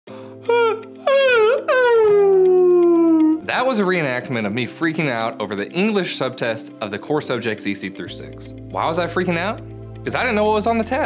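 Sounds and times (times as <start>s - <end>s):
man wailing and moaning: 0.4s - 3.4s.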